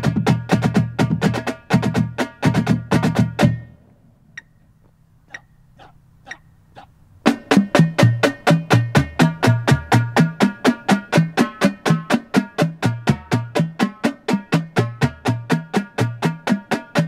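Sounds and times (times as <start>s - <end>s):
marching drumline playing: 0.0s - 3.7s, 7.3s - 17.0s.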